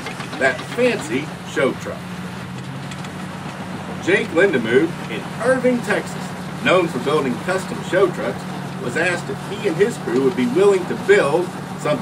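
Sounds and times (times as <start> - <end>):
engine humming with hiss: 0.0 - 12.0.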